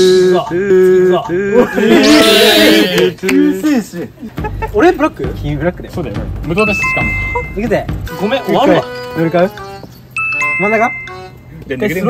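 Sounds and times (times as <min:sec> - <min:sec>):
people talking: 0:00.0 - 0:09.6, 0:10.4 - 0:12.0
two-note electronic chime: 0:06.6 - 0:07.9, 0:10.2 - 0:11.5.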